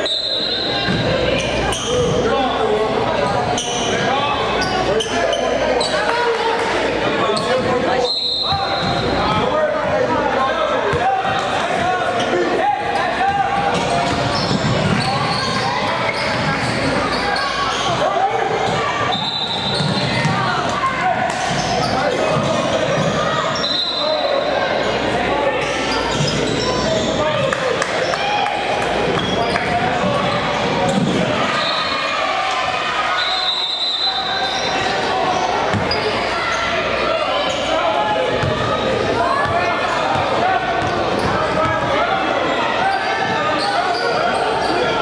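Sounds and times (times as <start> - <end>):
echoing voices: 0.0 - 45.0.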